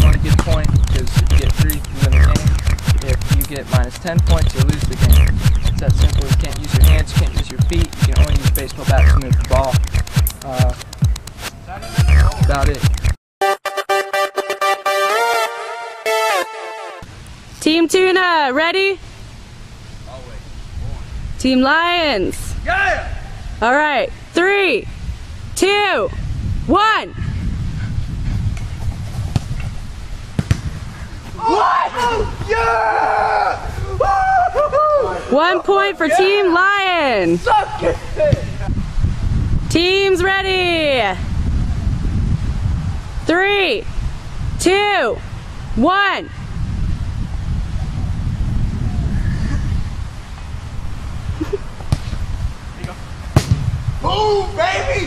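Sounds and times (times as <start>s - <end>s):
wind rumble on microphone: 0.0s - 10.1s, 20.6s - 31.4s, 32.0s - 35.3s, 37.0s - 55.0s
bat knocking a ball: 53.4s - 53.7s.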